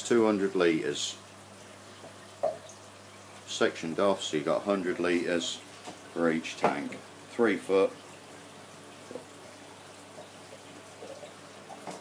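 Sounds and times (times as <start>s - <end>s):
aquarium water trickling: 0.0s - 12.0s.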